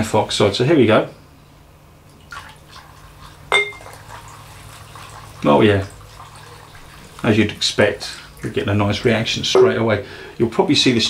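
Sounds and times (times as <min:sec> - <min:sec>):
liquid trickling: 0:02.0 - 0:09.5
glass clink: 0:03.5 - 0:03.9.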